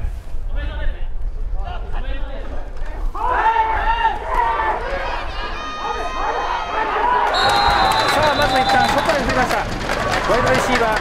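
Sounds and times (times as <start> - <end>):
players shouting and cheering: 3.1 - 11.0
long high whistle blast: 7.3 - 9.0.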